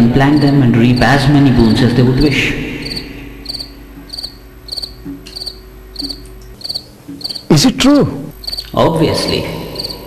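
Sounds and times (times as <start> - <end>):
cricket chirping: 0.0 - 7.7, 8.3 - 10.0.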